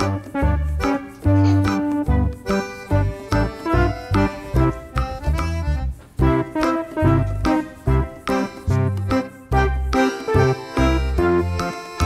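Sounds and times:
bass line: 0.0s - 11.7s
bouncy keyboard tune: 0.0s - 12.0s.

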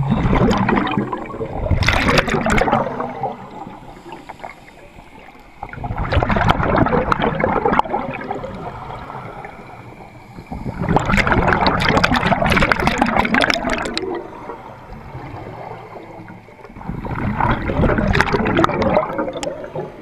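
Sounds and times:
underwater regulator bubbles gurgling: 0.0s - 20.0s.

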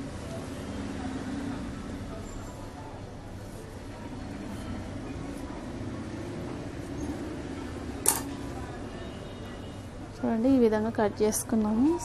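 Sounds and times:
faint distant voices: 0.0s - 12.0s
steady background noise: 0.0s - 12.0s.

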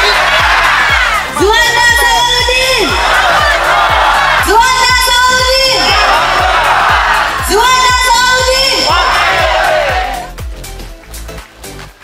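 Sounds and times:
crowd chanting: 0.0s - 1.4s, 2.8s - 4.6s, 5.2s - 7.6s, 8.7s - 10.3s
crowd noise: 0.0s - 10.2s
dance music with kick drum: 0.0s - 11.8s.

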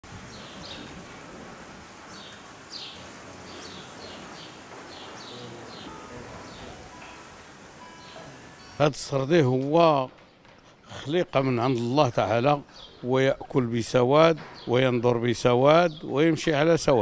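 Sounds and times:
steady background noise: 0.0s - 17.0s
small birds chirping: 0.1s - 9.4s, 10.1s - 17.0s.

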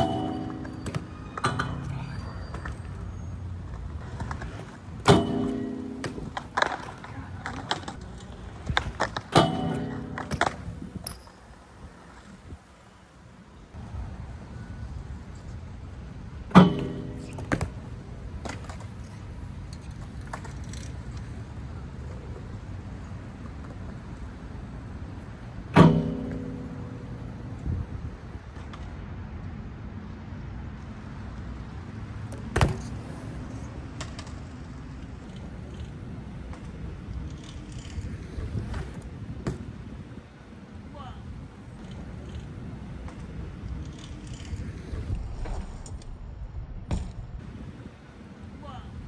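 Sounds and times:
bike metallic clang: 0.0s - 3.1s, 5.0s - 6.6s, 9.3s - 11.6s, 16.5s - 18.0s, 25.7s - 28.2s
bike tyres rolling on concrete: 0.0s - 48.6s
loud metallic clank with ringing: 5.1s - 6.3s, 9.4s - 11.3s.

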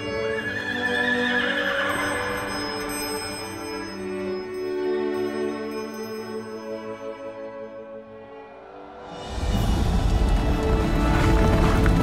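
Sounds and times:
horse whinnying: 0.0s - 2.5s.

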